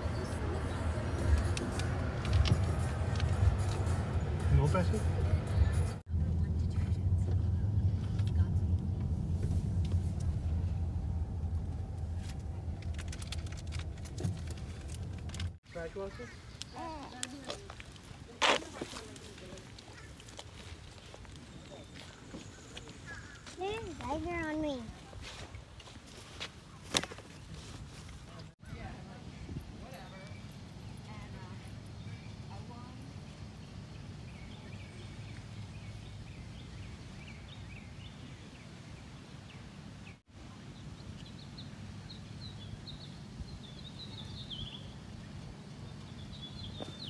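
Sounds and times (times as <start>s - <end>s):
car engine and tyre rumble: 0.0s - 15.6s.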